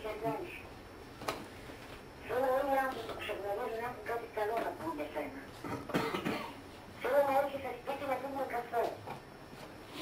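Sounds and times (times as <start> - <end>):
person coughing: 5.6 - 6.6.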